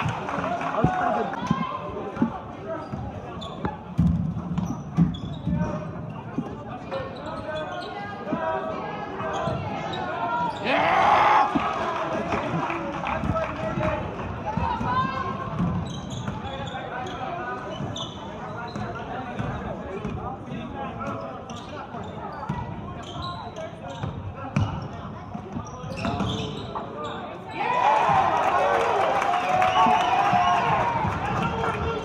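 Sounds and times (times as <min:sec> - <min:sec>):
spectators chattering: 0:00.0 - 0:32.0
crowd shouting: 0:10.4 - 0:12.5.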